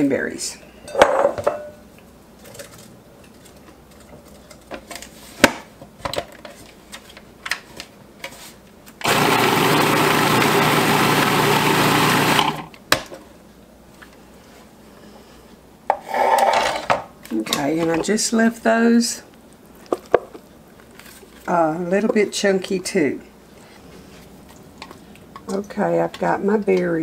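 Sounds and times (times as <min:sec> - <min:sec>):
food processor chopping: 0:09.0 - 0:12.7.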